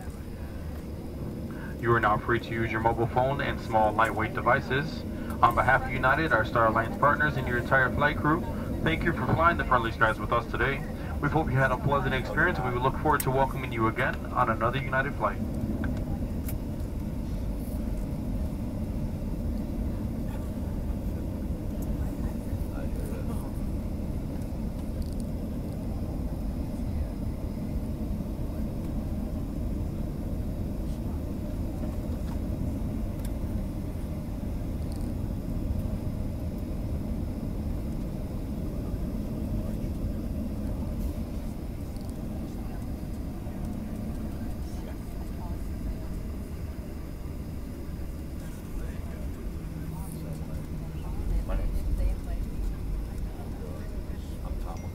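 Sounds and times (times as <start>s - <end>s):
jet engines idling rumble: 0.0s - 54.9s
low hum: 0.0s - 54.9s.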